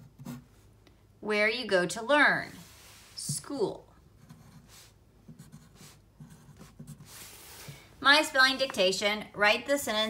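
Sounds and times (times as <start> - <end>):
pencil scratching on paper: 0.0 - 0.5, 4.2 - 7.6.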